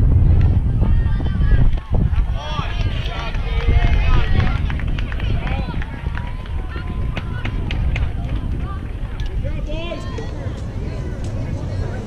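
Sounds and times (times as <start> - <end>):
people calling and shouting: 0.0 - 12.0
wind rumble on microphone: 0.0 - 12.0
sharp claps or clicks: 2.7 - 8.5.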